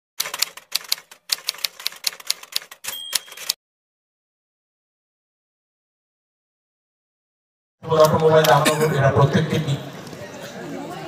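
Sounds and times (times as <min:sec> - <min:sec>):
high ring: 0:02.9 - 0:03.5.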